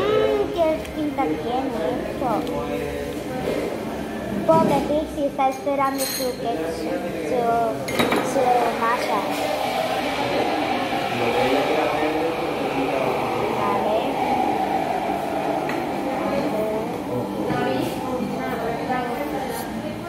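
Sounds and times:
diners chattering: 0.0 - 20.0.

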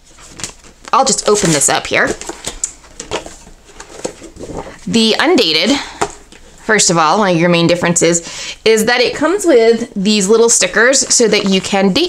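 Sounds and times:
paper pages rustling: 0.0 - 4.9, 11.0 - 12.0.

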